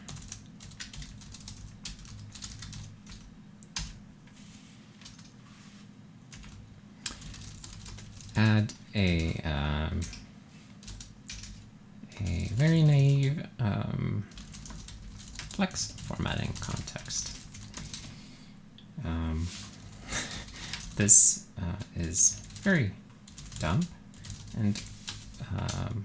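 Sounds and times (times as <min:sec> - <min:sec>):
typing on computer keyboard: 0:00.0 - 0:04.0, 0:06.4 - 0:08.5, 0:10.8 - 0:11.6, 0:14.3 - 0:18.1, 0:20.4 - 0:21.0, 0:23.3 - 0:25.9.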